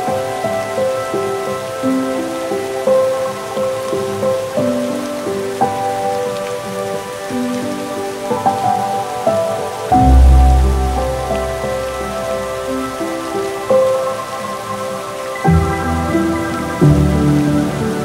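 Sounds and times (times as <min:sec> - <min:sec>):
rain-like hiss: 0:00.0 - 0:18.0
slow single-note melody: 0:09.9 - 0:13.6
deep bass note: 0:10.0 - 0:11.6.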